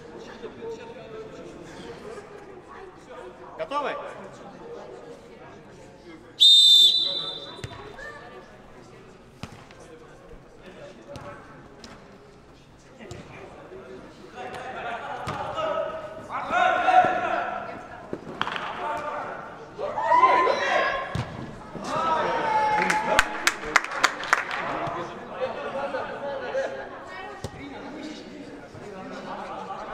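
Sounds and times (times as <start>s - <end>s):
referee's whistle blast: 6.4s - 7.9s
players shouting: 19.8s - 21.2s.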